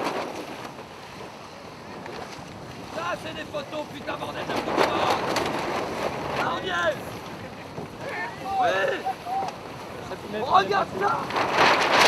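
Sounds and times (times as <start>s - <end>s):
water along boat hull: 0.0s - 12.0s
wind on microphone: 0.0s - 12.0s.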